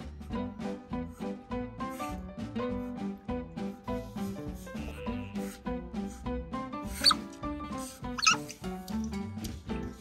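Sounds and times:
background music: 0:00.0 - 0:10.0
otter squeaking: 0:07.0 - 0:07.3, 0:08.2 - 0:08.5.

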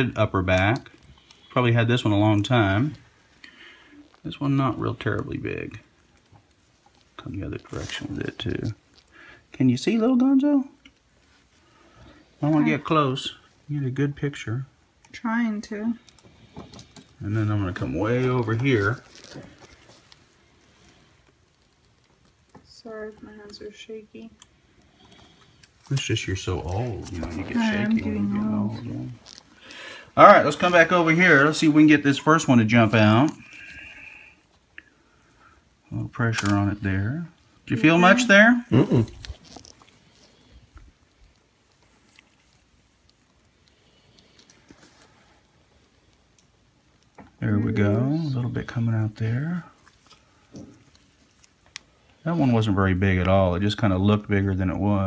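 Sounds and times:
faint rustling: 0:15.6 - 0:54.4
soft rustles of gloved hands: 0:16.0 - 0:22.7.

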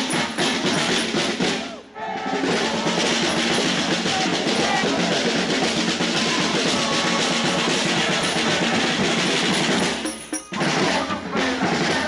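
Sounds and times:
din of marching crowd: 0:00.0 - 0:12.0
frame drum beaten in rhythm: 0:00.0 - 0:12.0.

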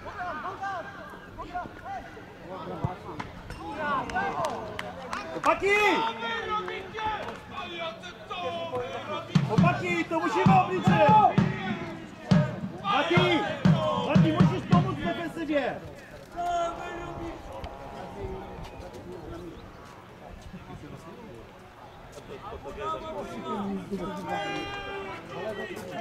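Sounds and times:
players shouting: 0:03.6 - 0:20.2, 0:22.8 - 0:26.0.

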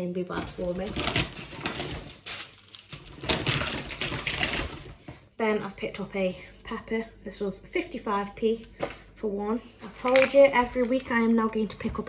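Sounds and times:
plastic bag rustling: 0:00.4 - 0:05.1.

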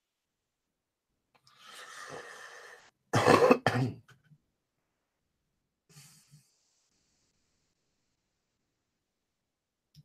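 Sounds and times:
soft breath: 0:01.4 - 0:03.0
person coughing: 0:03.2 - 0:04.1.

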